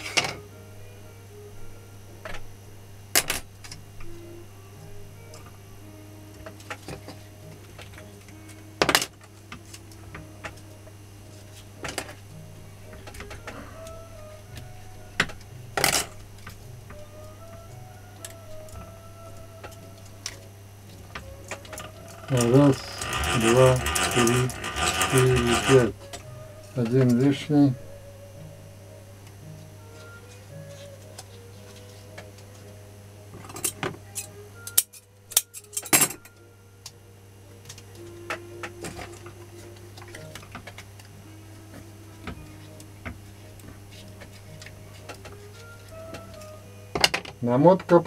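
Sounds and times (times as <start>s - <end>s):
electrical hum: 0.0s - 48.0s
winding wire by hand: 21.2s - 27.3s
man talking: 22.3s - 26.0s, 26.8s - 27.8s.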